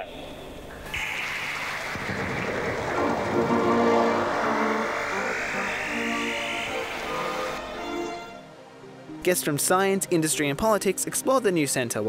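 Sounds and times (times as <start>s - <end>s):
sweeping electronic tone: 1.0s - 8.6s.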